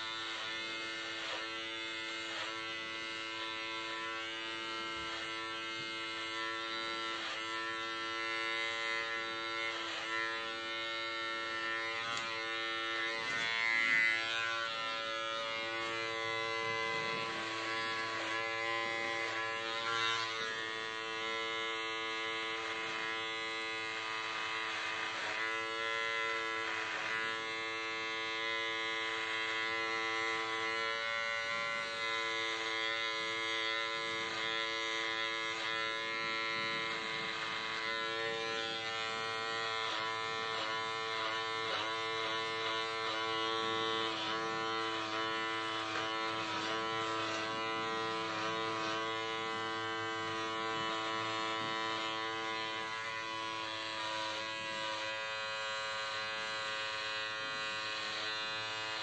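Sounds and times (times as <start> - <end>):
electric hair trimmer buzzing: 0.0 - 59.0.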